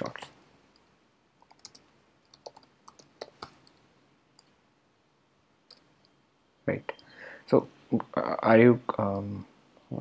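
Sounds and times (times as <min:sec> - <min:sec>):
computer keyboard clicks: 0:01.4 - 0:03.8.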